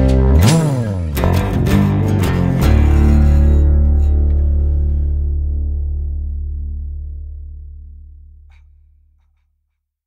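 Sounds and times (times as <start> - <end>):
guitar and bass notes: 0.0 - 9.2.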